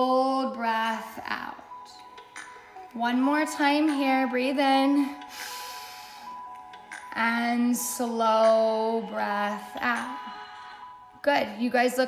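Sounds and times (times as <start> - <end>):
quiet background music: 0.0 - 12.0
slow breath in: 5.3 - 6.5.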